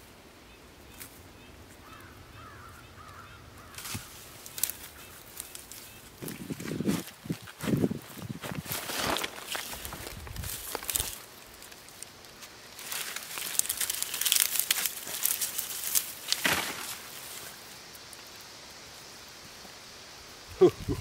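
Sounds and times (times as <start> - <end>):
dry vines rustling and crackling: 0.8 - 19.8
dull thuds of soil: 16.3 - 17.2.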